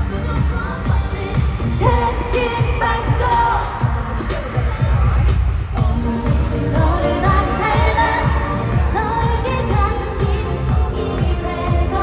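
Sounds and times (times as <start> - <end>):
pop dance song over loudspeakers: 0.0 - 12.0.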